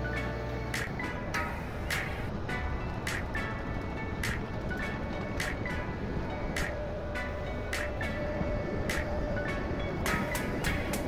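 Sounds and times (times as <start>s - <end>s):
engine whine: 0.0s - 11.0s
excavator engine rumble: 0.0s - 11.0s.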